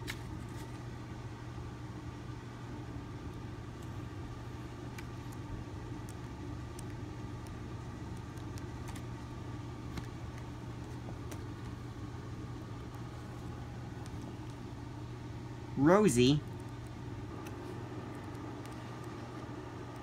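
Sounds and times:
low mechanical hum: 0.0 - 20.0
books being handled: 8.4 - 11.9.

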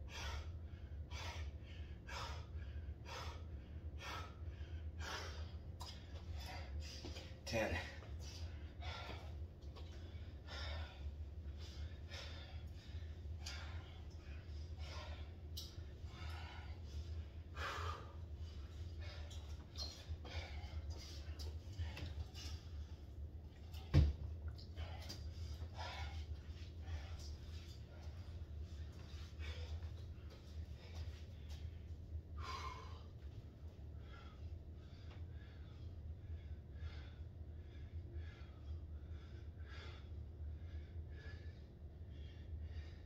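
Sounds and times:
man breathing heavily: 0.0 - 43.0.

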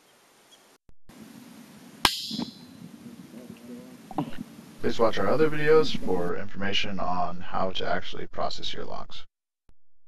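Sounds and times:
low steady hum: 1.1 - 8.0.

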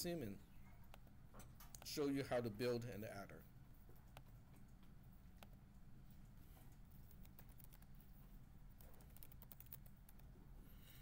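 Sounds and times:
low steady hum: 0.0 - 11.0
keyboard typing: 6.2 - 10.3.

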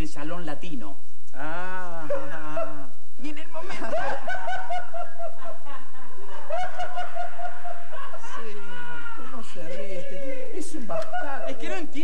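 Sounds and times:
man laughing: 3.6 - 11.8.

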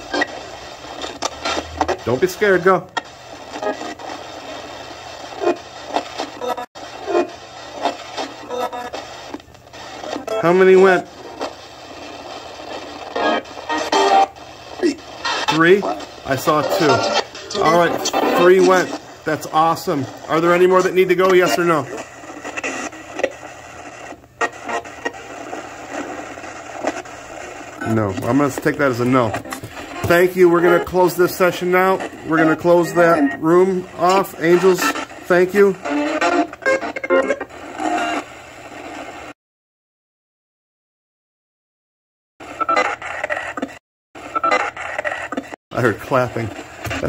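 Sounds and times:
radio crackles and snippets: 0.0 - 39.4, 42.4 - 47.0
radio static hiss: 0.0 - 39.4, 42.4 - 47.0
snatches of broadcast sound: 0.0 - 39.4, 42.4 - 47.0.

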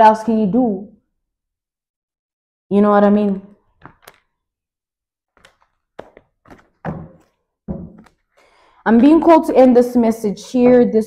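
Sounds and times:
objects knocking on a tabletop: 5.4 - 8.2.

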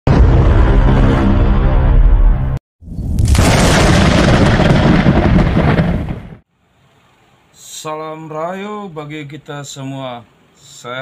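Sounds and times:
thunder crash: 0.1 - 6.4.

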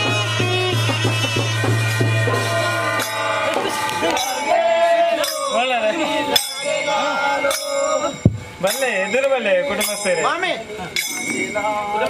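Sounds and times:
men chanting a devotional song: 0.0 - 12.0
steady metallic ringing: 4.2 - 12.0.

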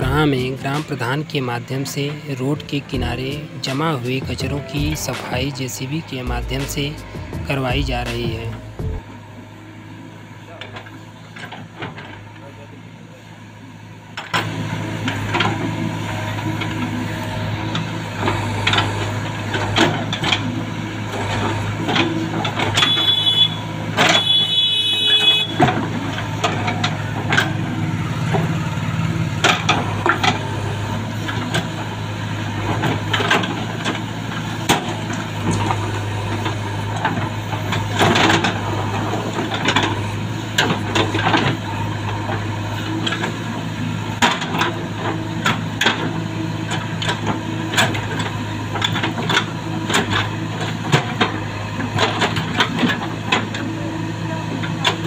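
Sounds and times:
diesel engine under load: 0.0 - 55.0.

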